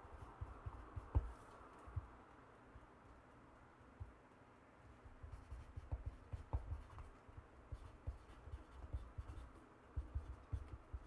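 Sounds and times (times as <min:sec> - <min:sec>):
soft low knocks on wood: 0:00.2 - 0:02.2, 0:05.1 - 0:09.4
pen scratching on paper: 0:07.7 - 0:11.0.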